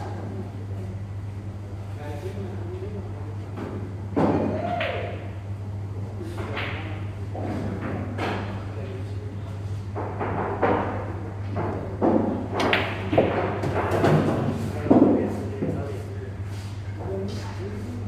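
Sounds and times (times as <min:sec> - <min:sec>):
steady low hum: 0:00.0 - 0:18.0
people talking: 0:01.9 - 0:05.1, 0:06.0 - 0:09.6, 0:14.3 - 0:16.4.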